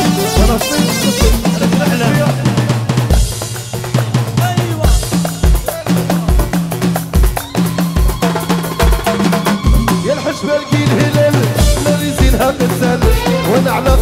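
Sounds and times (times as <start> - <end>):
bass line: 0.0 - 14.0
bending melody line: 0.0 - 14.0
drum machine beat: 0.0 - 14.0.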